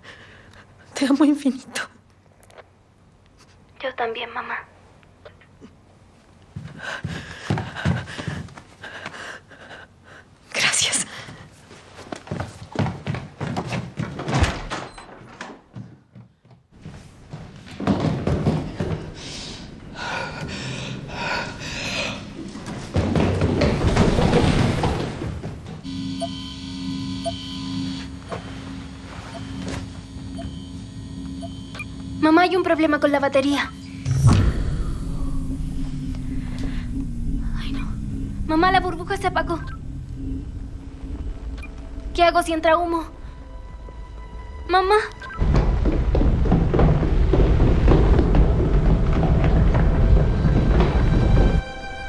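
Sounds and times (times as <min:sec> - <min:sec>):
person gasping: 0:06.7 - 0:10.3, 0:19.2 - 0:22.4
thuds and knocks: 0:22.6 - 0:25.9, 0:45.4 - 0:51.8
low hum with faint tones: 0:25.6 - 0:45.6.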